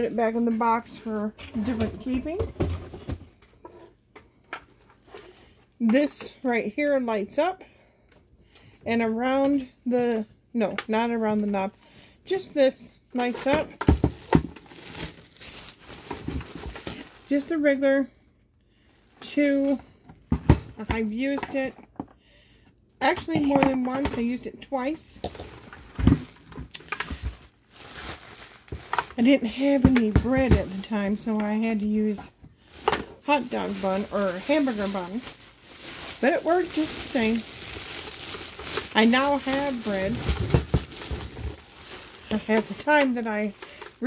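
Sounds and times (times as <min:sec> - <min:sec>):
plastic bag crinkling: 0:13.2 - 0:17.7, 0:25.3 - 0:44.0
plastic wrapping rustling: 0:13.2 - 0:18.0, 0:25.2 - 0:44.0.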